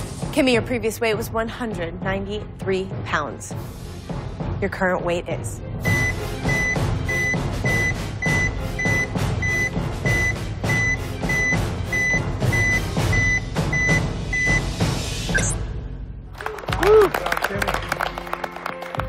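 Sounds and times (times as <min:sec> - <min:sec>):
dramatic suspense music: 0:00.0 - 0:16.6
high electronic beeps: 0:05.8 - 0:14.7.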